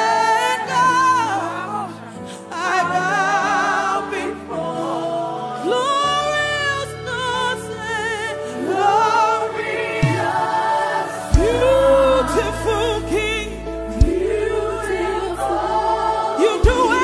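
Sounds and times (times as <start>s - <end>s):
choir singing with vibrato: 0.0s - 17.0s
band playing: 9.8s - 17.0s
deep bass hits: 11.4s - 14.8s.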